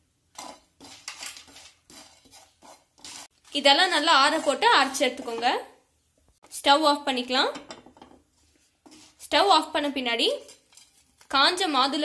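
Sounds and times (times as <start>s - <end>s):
spatula stirring spices in pan: 0.0s - 5.9s, 8.0s - 11.6s.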